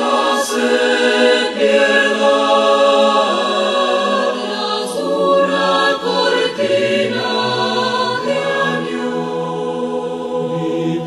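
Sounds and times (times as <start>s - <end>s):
mixed choir singing chords: 0.0s - 11.0s.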